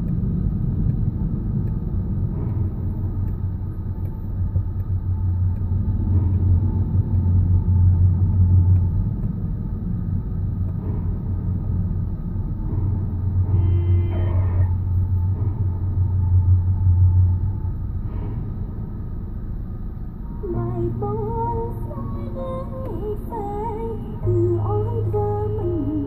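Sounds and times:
car engine and tyre rumble: 0.0 - 26.0.

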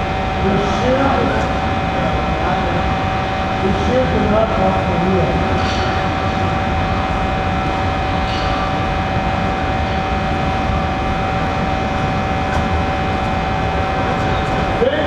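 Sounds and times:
din of a large hall: 0.0 - 7.8
constant mechanical hum: 0.0 - 15.0.

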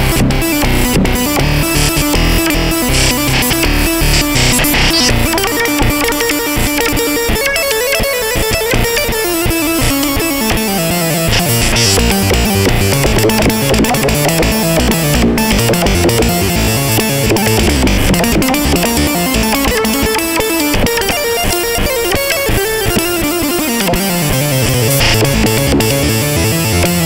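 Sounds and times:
synth bass line: 0.0 - 20.8, 24.0 - 27.0
synthesizer with plucked tone: 0.0 - 27.0.

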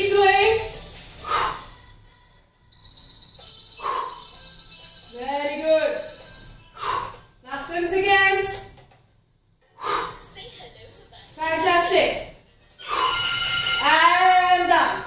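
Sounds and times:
high-pitched electronic beep: 2.8 - 6.7.

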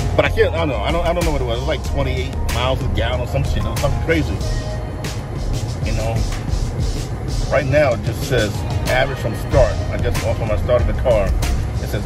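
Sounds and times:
car cabin road and engine rumble: 0.0 - 12.0.

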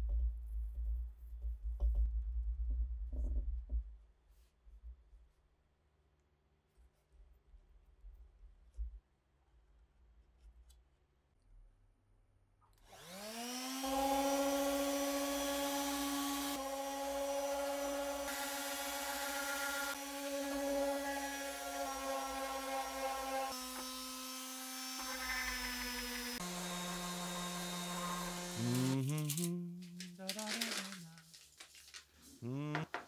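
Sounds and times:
orbital sander whining: 12.9 - 29.3.

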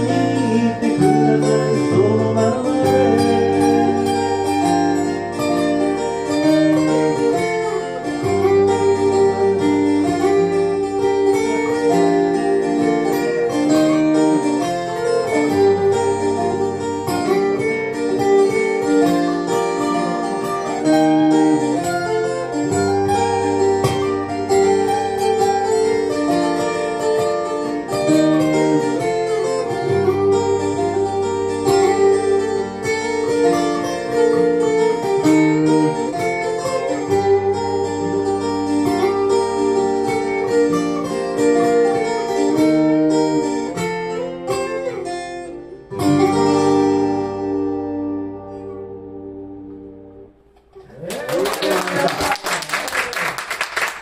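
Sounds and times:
acoustic guitar picking melody: 0.0 - 50.9
acoustic guitar strumming chords: 0.0 - 50.9.

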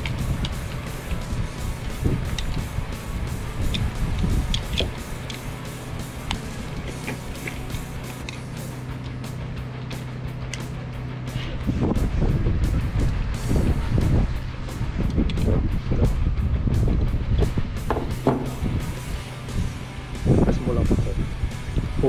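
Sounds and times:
wind rumble on microphone: 0.0 - 6.9, 11.4 - 22.0
cartridges clicking into magazine: 0.0 - 9.2, 9.8 - 10.7
steady low hum: 0.0 - 22.0.

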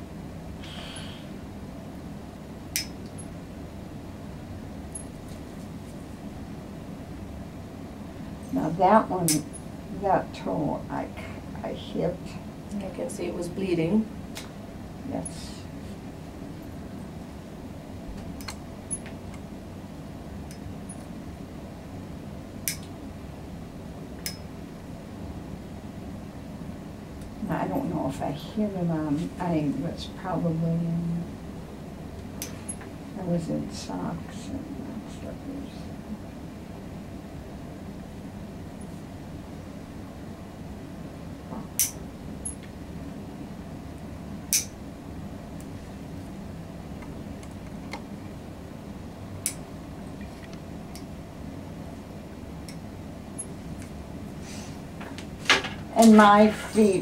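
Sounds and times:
steady room hum: 0.0 - 57.0.

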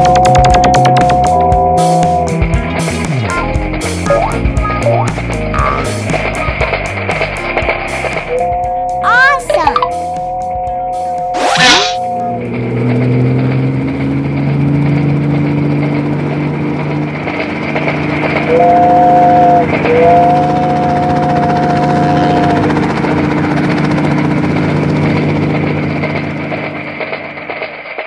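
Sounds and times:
cartoon helicopter rotor drone: 3.4 - 6.8, 11.4 - 12.6, 13.4 - 28.0
two-note horn: 18.5 - 22.7.

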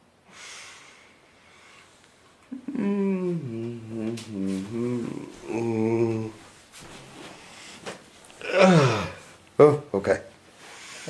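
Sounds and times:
deep breath through the nose: 0.3 - 2.0.

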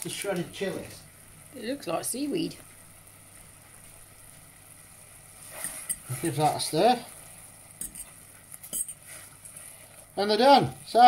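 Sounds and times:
fork stirring noodles in pot: 5.4 - 6.5, 7.7 - 10.1
fork clinking against metal pot: 7.8 - 9.0.

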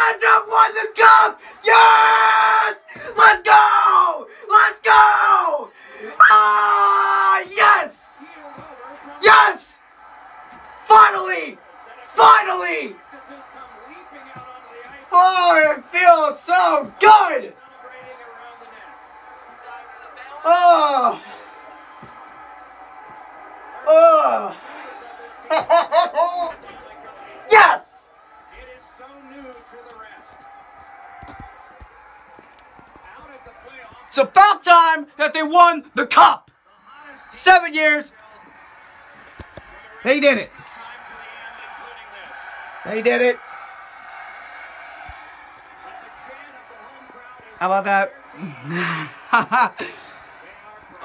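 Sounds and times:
man yelling: 0.0 - 8.2, 9.0 - 9.8, 10.8 - 13.0, 15.1 - 17.5, 20.4 - 21.3, 23.8 - 28.0, 34.1 - 36.4, 42.8 - 43.4
young man shouting excitedly: 0.0 - 8.2, 9.1 - 9.8, 10.8 - 13.0, 15.1 - 17.5, 20.4 - 21.2, 27.4 - 28.0, 34.1 - 36.4
crowd noise: 0.0 - 51.0
tv sports commentary murmur: 0.0 - 51.0.

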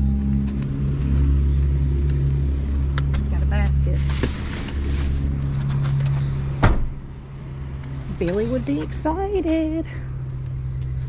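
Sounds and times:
motor running drone: 0.0 - 6.6.

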